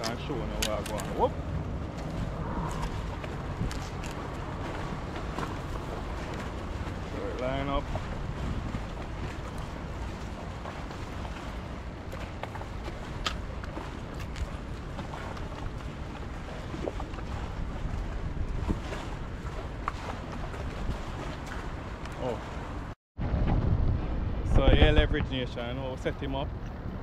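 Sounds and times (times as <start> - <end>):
wind rumble on microphone: 0.0 - 27.0.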